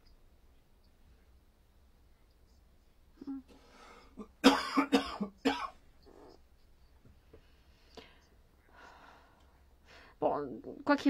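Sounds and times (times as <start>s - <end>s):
person clearing throat: 4.2s - 5.8s
person coughing: 4.2s - 5.8s.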